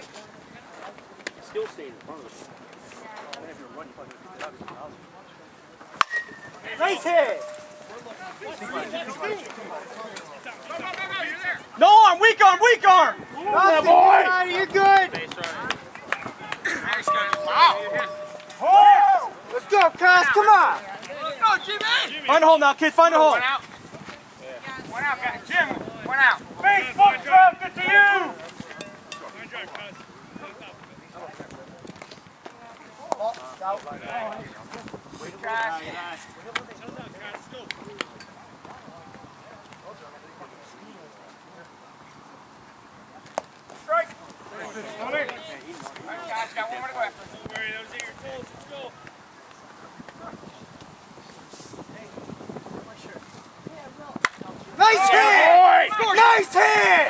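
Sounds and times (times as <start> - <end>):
outdoor background hiss: 0.0 - 31.2
short ringing tone: 7.2 - 8.1, 17.1 - 19.0
people shouting: 17.1 - 19.4, 54.8 - 57.0.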